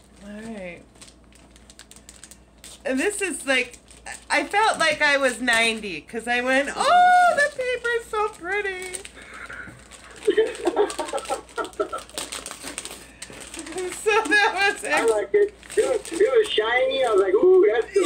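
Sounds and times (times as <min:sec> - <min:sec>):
wrapping paper rustling: 0:00.0 - 0:18.0
woman exclaiming: 0:06.5 - 0:09.0, 0:13.7 - 0:18.0.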